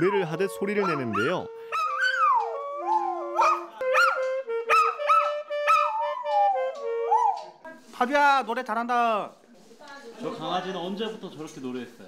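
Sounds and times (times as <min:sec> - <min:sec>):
dog howling: 0:00.0 - 0:07.5
saxophone: 0:01.4 - 0:07.6.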